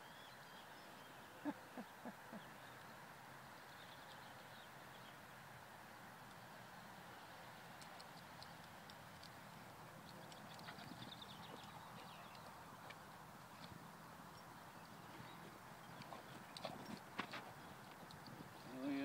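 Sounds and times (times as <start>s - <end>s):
faint outdoor background hiss: 0.0s - 19.0s
faint clicks and ticks: 7.8s - 18.6s.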